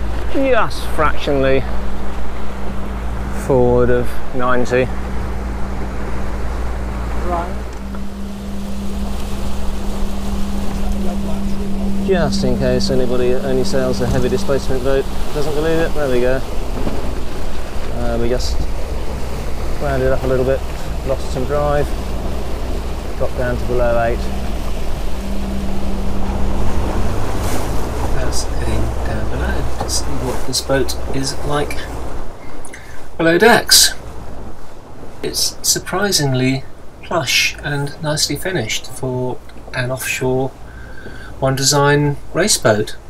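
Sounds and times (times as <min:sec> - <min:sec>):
wind noise: 0:00.0 - 0:33.2
steady low hum: 0:00.0 - 0:43.0
water rushing along a hull: 0:00.0 - 0:43.0.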